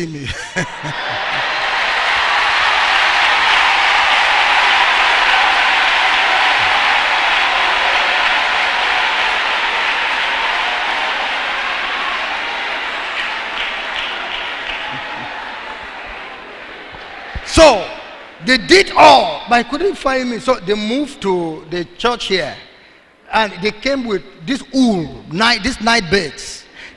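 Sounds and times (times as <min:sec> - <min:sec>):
large crowd applauding: 0:00.5 - 0:17.4.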